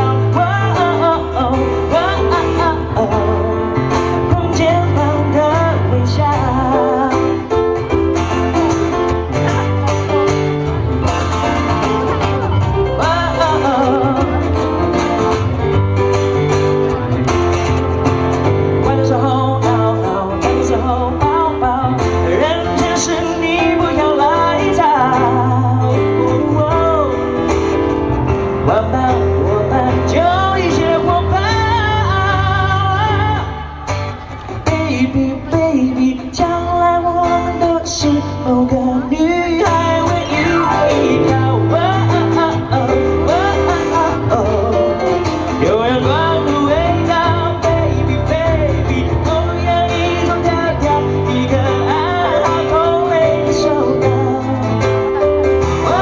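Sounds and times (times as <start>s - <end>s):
acoustic guitar: 0.0s - 56.0s
man singing: 0.0s - 56.0s.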